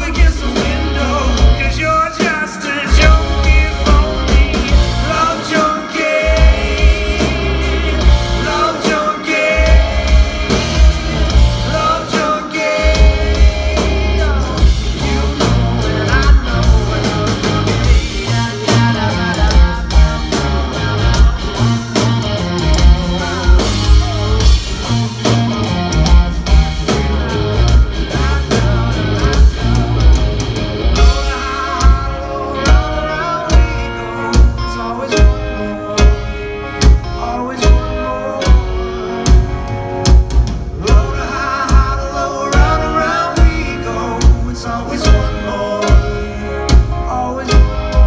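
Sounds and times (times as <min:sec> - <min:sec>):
man singing: 0:00.0 - 0:25.3, 0:26.9 - 0:30.2, 0:31.0 - 0:39.5, 0:40.8 - 0:48.0
bass guitar: 0:00.0 - 0:48.0
drum kit: 0:00.0 - 0:48.0
electric guitars: 0:00.0 - 0:48.0.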